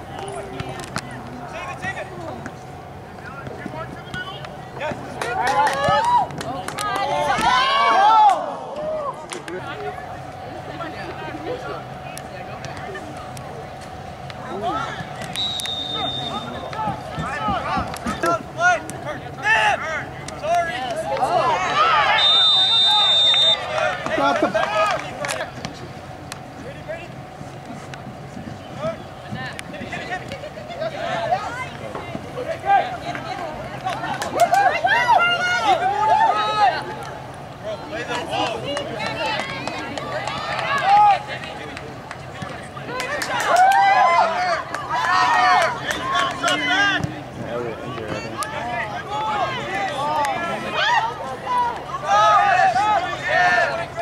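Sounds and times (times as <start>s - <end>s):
people shouting: 5.2s - 9.2s, 20.7s - 25.0s, 33.9s - 37.0s, 48.2s - 54.0s
loud call: 15.3s - 16.7s, 21.7s - 23.9s
referee's whistle: 15.3s - 16.7s, 22.1s - 23.7s.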